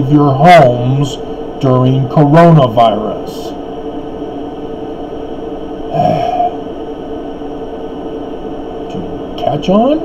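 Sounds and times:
steady background hum: 0.0 - 10.0
man's breathy vocal sound: 5.9 - 6.7.

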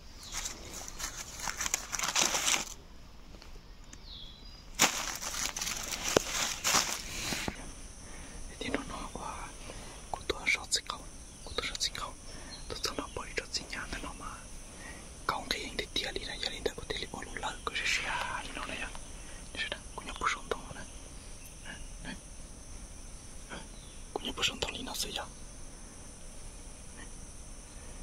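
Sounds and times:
man whispering: 8.5 - 20.9, 21.6 - 22.2, 23.5 - 25.3.

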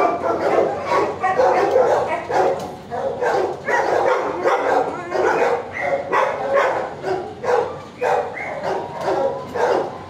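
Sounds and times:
dog barking: 0.0 - 10.0.

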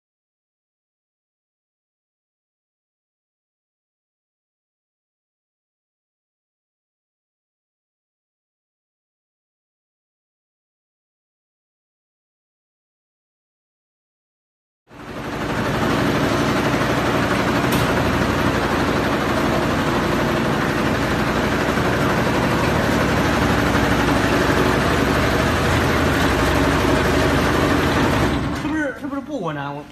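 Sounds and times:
quilting machine running: 14.9 - 29.0.

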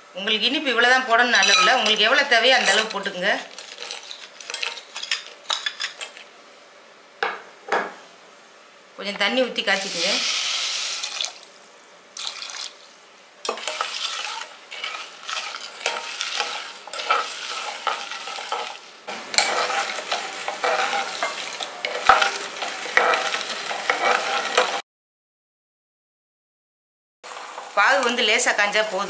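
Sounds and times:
ladle scraping and clinking in pan: 1.4 - 6.2, 13.5 - 24.8.

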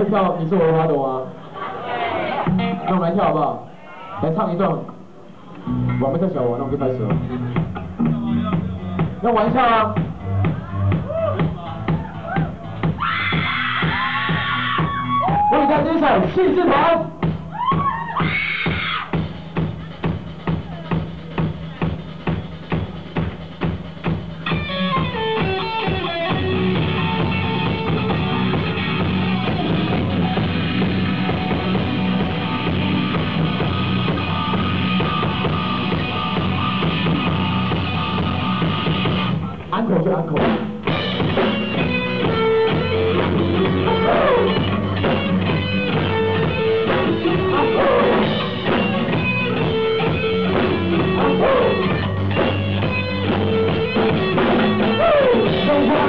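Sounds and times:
rock band playing live: 0.0 - 3.4, 5.5 - 56.0
sustained guitar chords: 2.4 - 3.0, 5.6 - 12.8, 24.4 - 39.7, 40.4 - 56.0
descending run of notes: 5.7 - 12.8
steady drum beat: 6.6 - 56.0.

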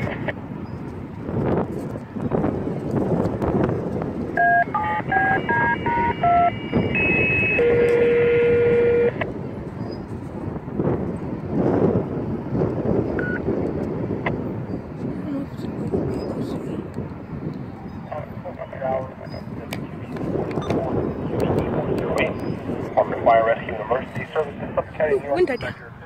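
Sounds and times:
two-note touch-tone beeps: 4.4 - 9.2
long steady tone: 4.4 - 10.1, 13.1 - 13.5.

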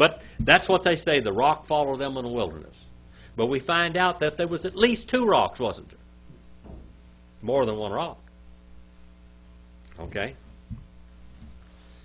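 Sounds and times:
electrical mains hum: 0.0 - 12.0
man speaking: 9.9 - 10.4.

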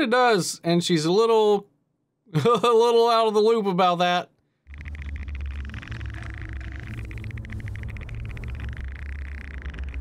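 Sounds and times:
rapid crackling buzz: 4.6 - 10.0
low rumbling drone: 4.7 - 10.0.

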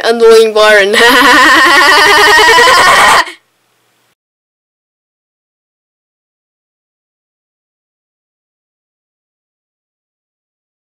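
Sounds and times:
loud warbling laugh: 0.9 - 3.4.

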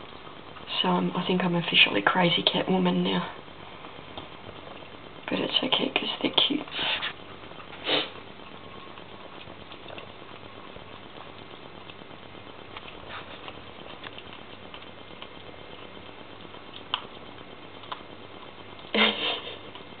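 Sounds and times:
kittens chewing meat: 2.2 - 20.0.

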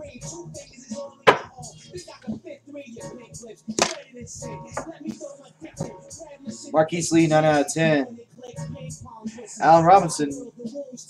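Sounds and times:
quiet background music: 0.0 - 11.0
plastic card holders clacking: 3.8 - 4.0.

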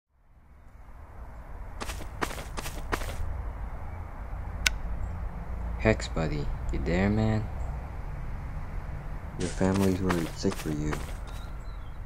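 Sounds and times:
short crisp rustling crunches: 1.8 - 3.3, 9.4 - 11.5.

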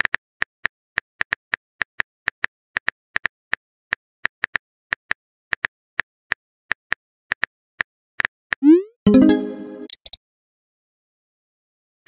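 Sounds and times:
rising bloop: 8.6 - 10.0
keyboard clicks: 8.6 - 10.2
pitched chime: 8.7 - 9.9.

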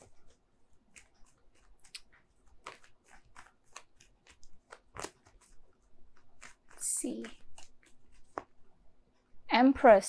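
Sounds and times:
cards being shuffled: 0.0 - 8.6.

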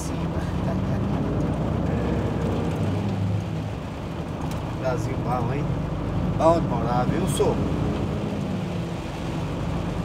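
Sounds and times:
diesel truck engine running: 0.0 - 10.0
tyre and rain noise: 0.0 - 10.0.

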